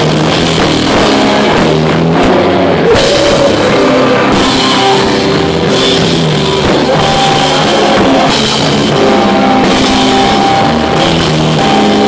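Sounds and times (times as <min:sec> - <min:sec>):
rock band playing loud: 0:00.0 - 0:12.0.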